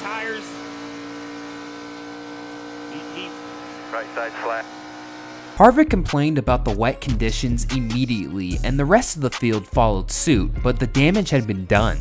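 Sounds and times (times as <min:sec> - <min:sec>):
race car engine droning: 0:00.0 - 0:06.9.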